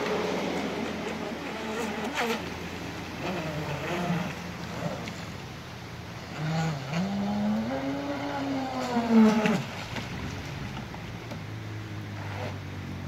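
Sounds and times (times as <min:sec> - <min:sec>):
model speedboat electric motor: 0:00.0 - 0:13.0.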